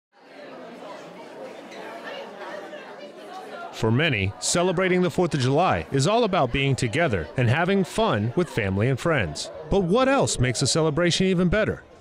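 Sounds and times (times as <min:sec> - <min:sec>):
crowd chatter in indoor hall: 0:00.2 - 0:12.0
man speaking: 0:03.8 - 0:11.8.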